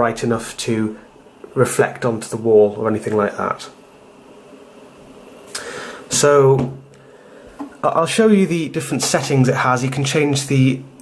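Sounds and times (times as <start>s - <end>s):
person drawing breath: 5.5s - 6.1s, 6.9s - 7.7s.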